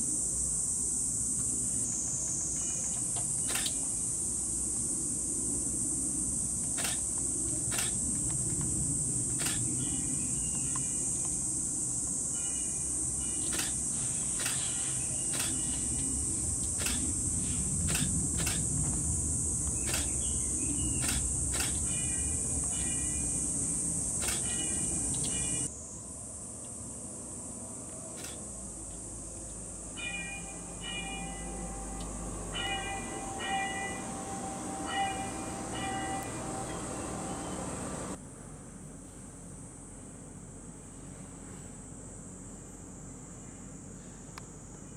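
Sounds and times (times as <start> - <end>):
high-pitched hiss: 0.0 - 38.2
scattered clicks: 2.4 - 3.9, 6.6 - 9.8, 13.4 - 17.2, 17.8 - 18.8, 19.6 - 20.3, 21.0 - 21.9, 24.2 - 25.7, 28.2 - 28.5
low background rumble: 15.5 - 25.7.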